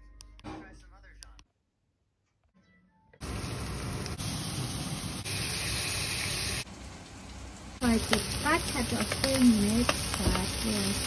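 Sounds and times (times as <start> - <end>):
potato strips sizzling in oil: 3.2 - 11.0.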